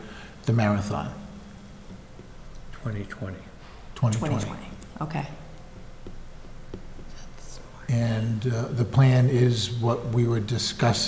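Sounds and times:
person speaking: 1.9s - 10.7s.

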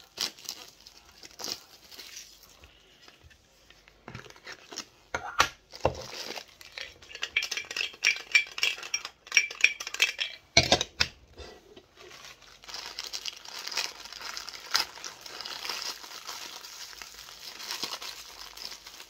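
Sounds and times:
plastic packaging crinkling: 0.0s - 10.2s, 11.8s - 19.0s.

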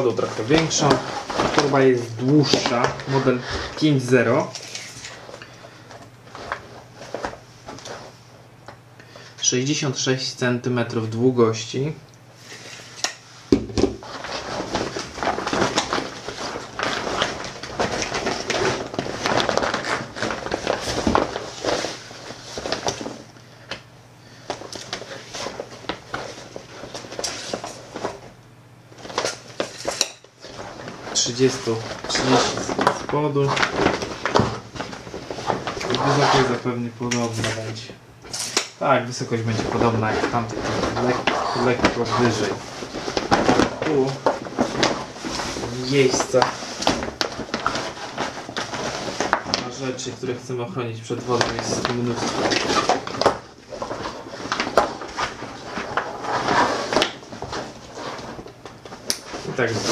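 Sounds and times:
rustling of coated fabric bag: 0.0s - 8.2s, 14.0s - 23.3s, 24.3s - 37.7s, 38.8s - 59.9s.

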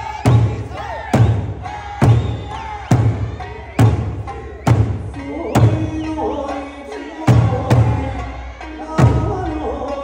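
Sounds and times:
folk song singing: 0.0s - 10.0s
heavy drum beats: 0.0s - 10.0s.

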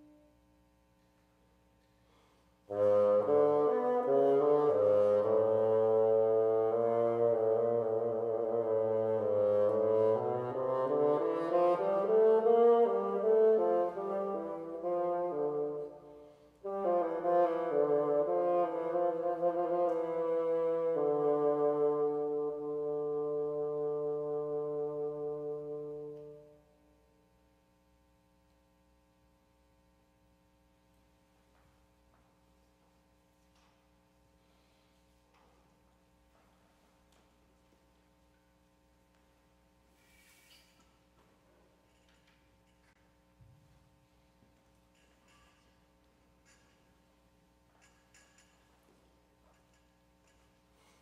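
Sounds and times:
bassoon solo: 2.7s - 26.9s.

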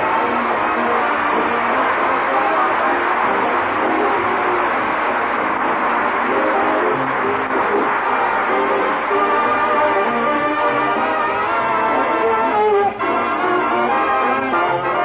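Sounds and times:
orchestra playing strings and brass: 0.0s - 15.0s.

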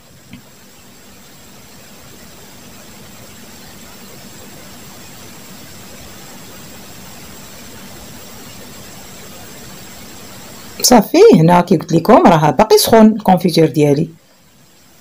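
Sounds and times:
thin high whine: 0.0s - 15.0s.

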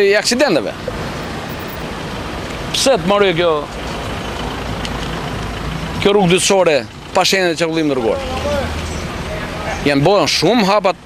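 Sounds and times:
man speaking: 0.0s - 0.9s, 2.7s - 3.7s, 6.0s - 11.0s.

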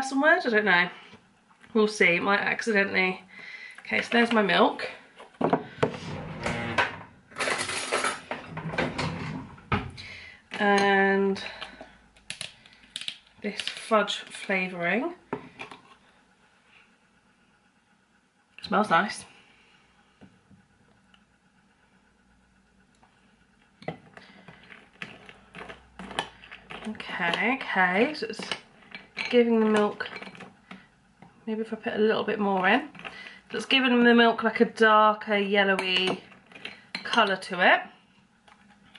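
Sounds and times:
rustling scrape: 5.6s - 9.7s.

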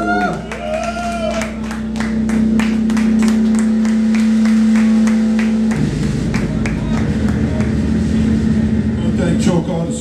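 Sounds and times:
audience clapping: 0.0s - 8.4s.

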